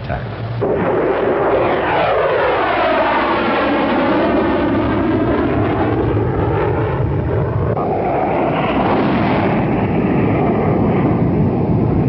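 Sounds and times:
low-flying military aircraft passing: 0.1s - 12.0s.

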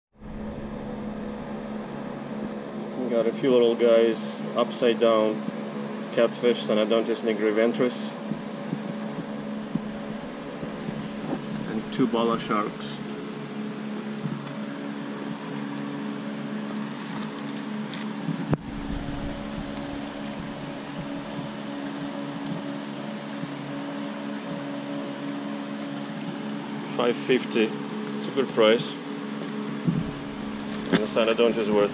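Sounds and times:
mechanical hum with hiss: 0.2s - 31.9s.

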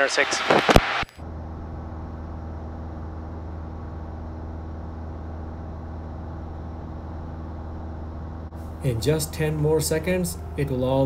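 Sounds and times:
propeller plane engine droning: 1.2s - 11.0s.

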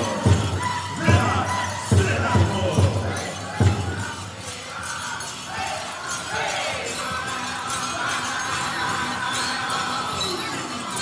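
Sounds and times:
heavy drum beats: 0.0s - 4.4s
bells jingling: 0.0s - 11.0s
high-pitched singing: 0.0s - 11.0s.

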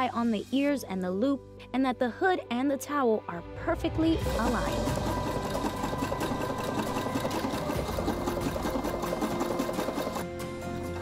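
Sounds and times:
sewing machine stitching: 4.3s - 11.0s.

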